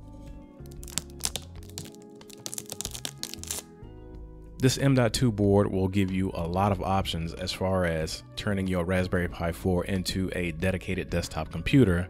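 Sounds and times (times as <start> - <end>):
background music with held notes: 0.0 - 12.0
plastic bag crinkling: 0.7 - 3.6.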